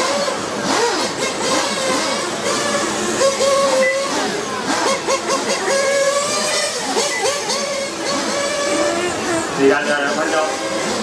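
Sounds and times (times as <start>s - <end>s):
rc motorcycle motors whining: 0.0s - 11.0s.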